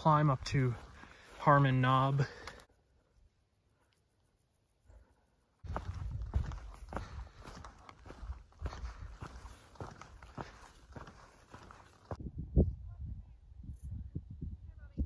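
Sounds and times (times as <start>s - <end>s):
footsteps on dirt and stone trail: 0.0s - 2.7s, 5.6s - 12.2s.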